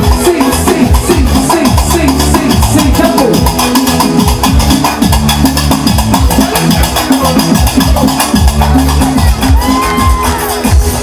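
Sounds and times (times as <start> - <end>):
fast percussion beat: 0.0 - 11.0
keyboard: 0.0 - 11.0
live band music: 0.0 - 11.0.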